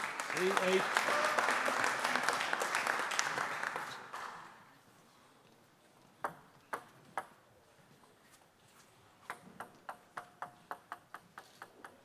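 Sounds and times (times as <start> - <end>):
spectators applauding: 0.0 - 4.6
table tennis ball bouncing: 6.2 - 7.4.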